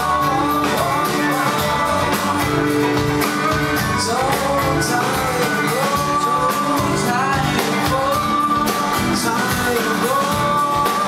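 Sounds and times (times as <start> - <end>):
drum kit: 0.0 - 11.0
man singing: 0.0 - 11.0
strummed acoustic guitar: 0.0 - 11.0.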